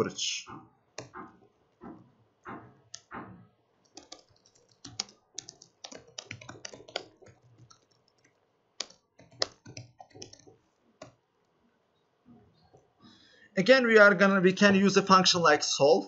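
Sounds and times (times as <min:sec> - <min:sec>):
laptop keyboard typing: 0:00.9 - 0:11.2.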